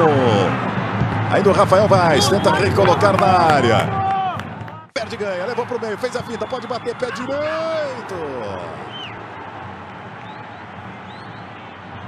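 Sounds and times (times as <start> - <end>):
stadium crowd voices: 0.0 - 12.0
faint high whistles: 8.9 - 9.2, 10.2 - 11.8.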